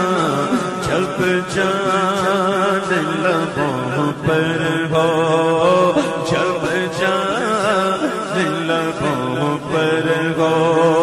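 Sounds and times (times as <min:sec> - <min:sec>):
person singing: 0:00.0 - 0:11.0.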